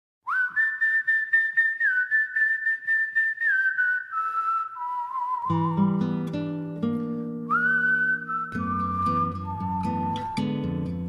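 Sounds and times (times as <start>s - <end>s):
high pulsing whistled tone: 0.3s - 6.2s, 7.5s - 10.7s.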